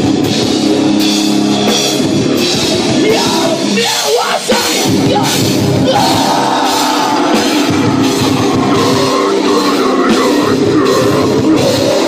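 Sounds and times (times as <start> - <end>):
heavy metal band playing live: 0.0 - 12.0.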